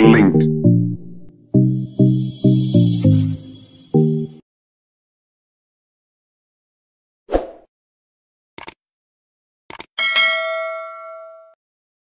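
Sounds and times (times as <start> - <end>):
quick double clicks: 8.6 - 8.8, 9.7 - 9.9
bright bell ding: 10.0 - 11.6.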